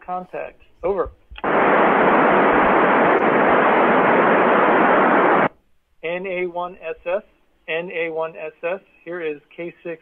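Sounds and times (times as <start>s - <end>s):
radio static hiss: 0.1s - 7.4s.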